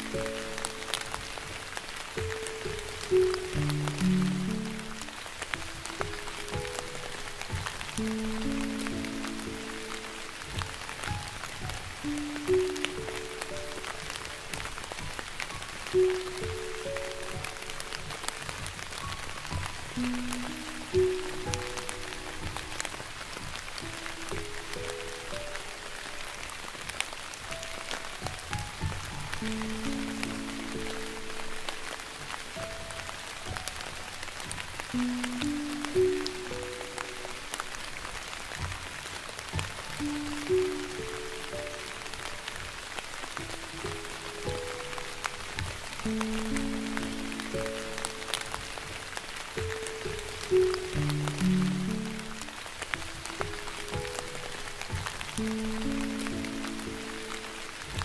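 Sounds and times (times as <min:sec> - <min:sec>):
slow piano melody: 0:00.0 - 0:58.0
soft rain: 0:00.0 - 0:58.0.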